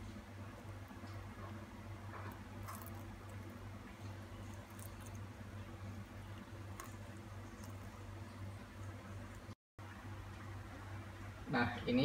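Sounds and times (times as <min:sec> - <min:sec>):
steady low hum: 0:00.0 - 0:12.0
coffee trickling: 0:00.1 - 0:09.6.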